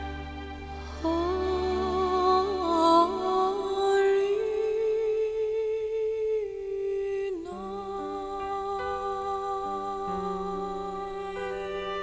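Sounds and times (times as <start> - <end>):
low sustained notes: 0.0 - 12.0
quiet musical accompaniment: 0.0 - 12.0.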